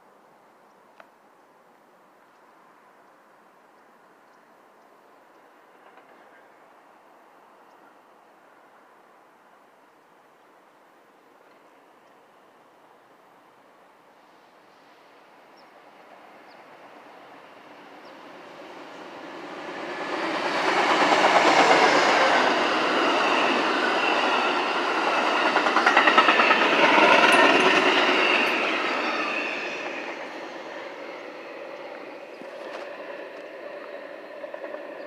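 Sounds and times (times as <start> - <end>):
passenger train passing: 5.0 - 9.6, 11.4 - 35.0.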